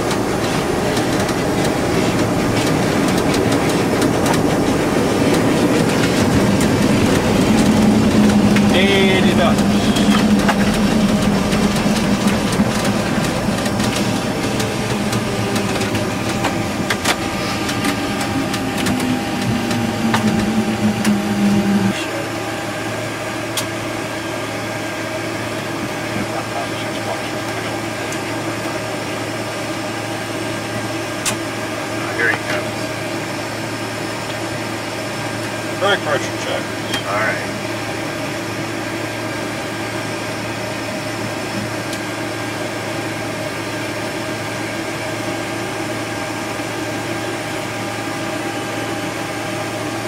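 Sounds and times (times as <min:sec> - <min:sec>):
aircraft cockpit engine noise: 0:00.0 - 0:50.0
low tone sliding down: 0:04.5 - 0:22.0.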